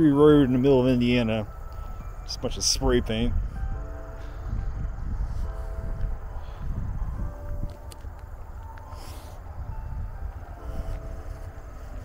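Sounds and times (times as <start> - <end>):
faint held musical chords: 0.0 - 12.0
wind buffeting microphone: 0.0 - 12.0.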